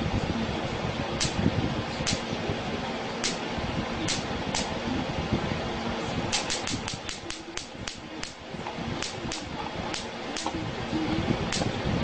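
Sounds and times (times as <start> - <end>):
steady background hiss: 0.0 - 12.0
spark plugs snapping: 3.2 - 3.4, 4.1 - 4.7, 6.3 - 8.4, 9.0 - 10.6, 11.5 - 11.7.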